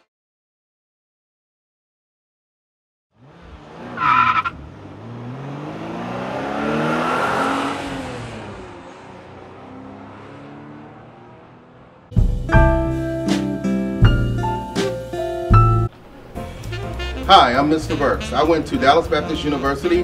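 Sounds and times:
tire screech: 0:03.2 - 0:11.0
car engine accelerating past: 0:03.2 - 0:12.2.

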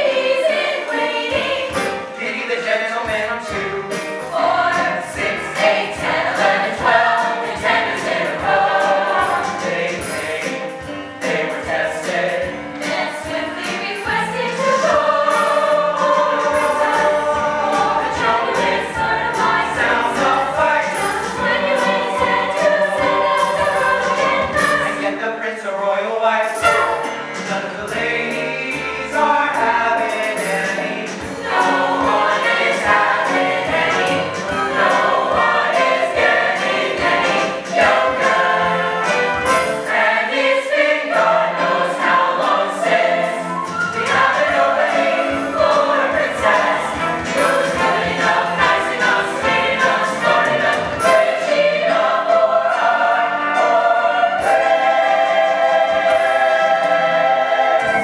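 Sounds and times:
musical accompaniment: 0:00.0 - 0:58.0
stage cast singing in chorus: 0:00.0 - 0:58.0.

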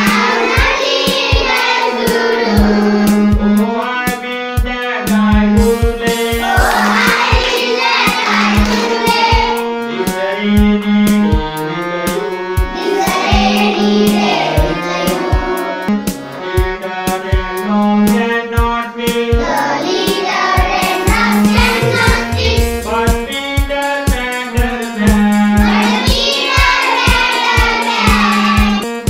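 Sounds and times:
children singing: 0:00.0 - 0:03.4, 0:06.2 - 0:10.4, 0:12.0 - 0:16.5, 0:19.2 - 0:23.1, 0:25.4 - 0:28.9
backing music with steady beat: 0:00.0 - 0:29.0.

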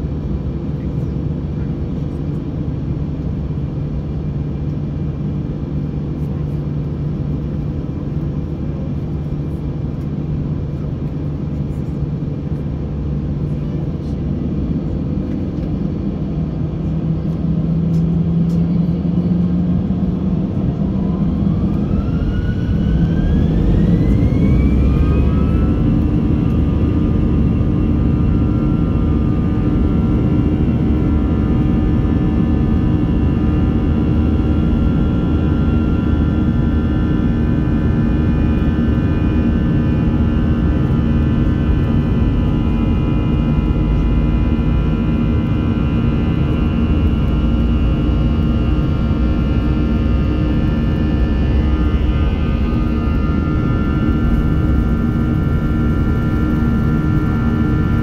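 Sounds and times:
jet engines whining: 0:00.0 - 0:58.0
heavy rumble: 0:08.6 - 0:58.0.

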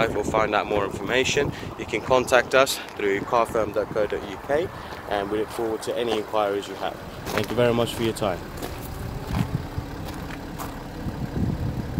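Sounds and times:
diesel engine idling: 0:00.0 - 0:11.9.

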